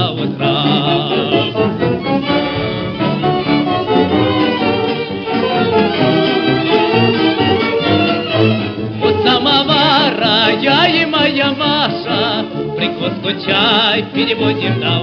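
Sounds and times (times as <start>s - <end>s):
person singing with vibrato: 0.0s - 3.2s, 9.0s - 15.0s
dance orchestra playing: 0.0s - 15.0s
violins playing melody: 0.0s - 15.0s.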